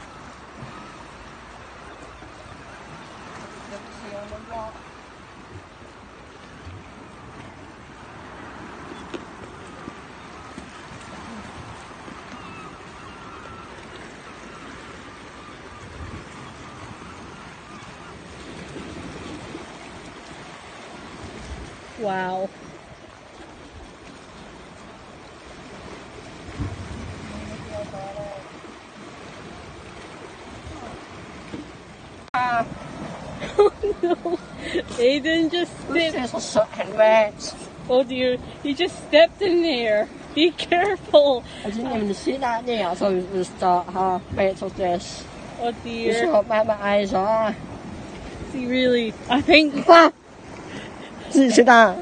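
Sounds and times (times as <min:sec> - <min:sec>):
surf on rocky shore: 0:00.0 - 0:52.0.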